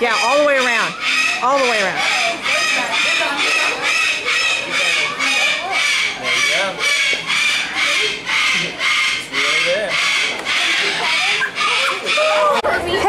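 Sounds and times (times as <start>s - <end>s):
voices murmuring: 0.0s - 13.0s.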